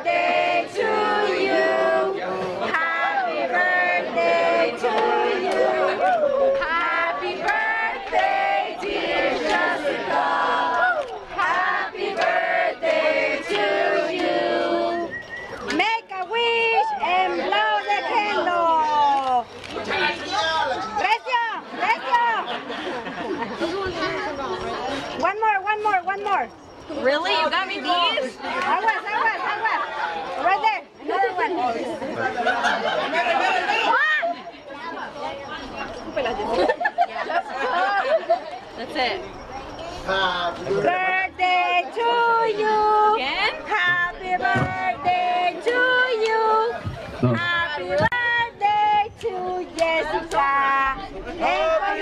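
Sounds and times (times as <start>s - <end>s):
group singing unaccompanied: 0.0s - 19.0s, 35.7s - 52.0s
party guests chattering: 0.0s - 52.0s.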